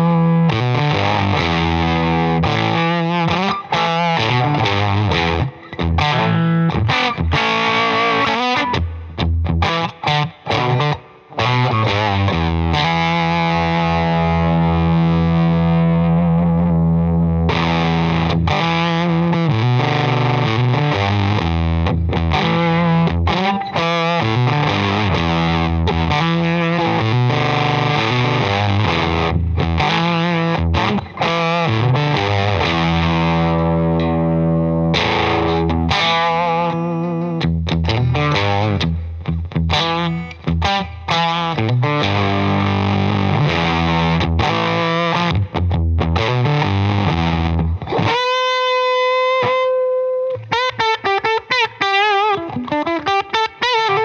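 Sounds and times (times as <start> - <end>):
fuzzed electric guitar chords: 0.0 - 54.0.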